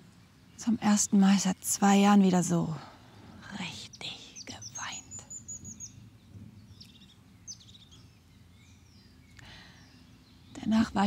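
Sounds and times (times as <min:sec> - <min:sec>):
songbird trill: 0:00.0 - 0:11.0
bird chirps: 0:03.1 - 0:11.0
woman breathing softly: 0:09.4 - 0:10.0.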